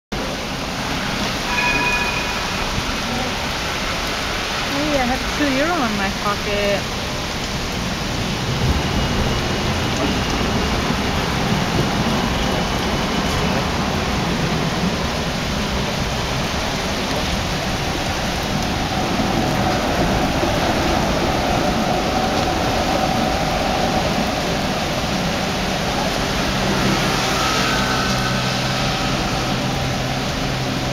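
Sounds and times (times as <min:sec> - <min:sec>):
heavy rain pouring: 0:00.1 - 0:30.9.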